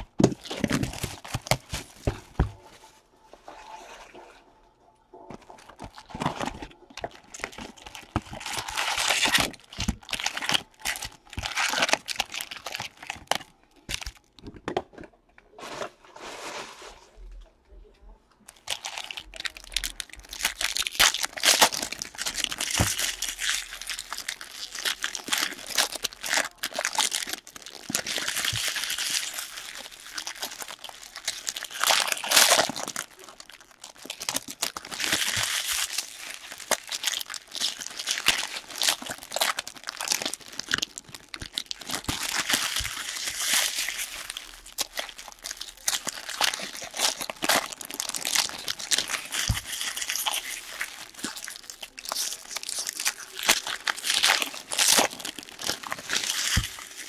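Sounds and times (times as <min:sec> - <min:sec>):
foil wrappers crinkling and ripping: 0:00.0 - 0:02.8, 0:05.3 - 0:14.4, 0:18.5 - 0:57.0.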